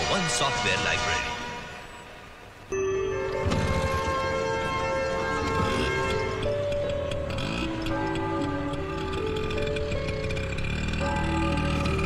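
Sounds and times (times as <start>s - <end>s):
sustained film score notes: 0.0s - 12.0s.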